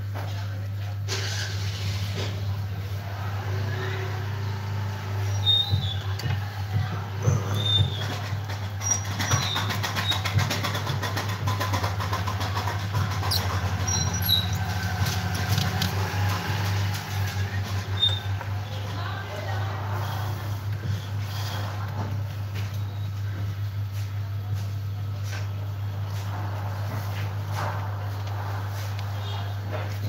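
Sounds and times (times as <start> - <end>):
engine rattling: 3.0 - 20.7.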